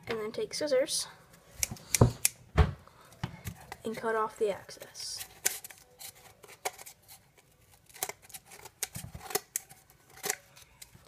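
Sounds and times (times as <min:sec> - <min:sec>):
scissors snipping paper: 0:07.8 - 0:11.0.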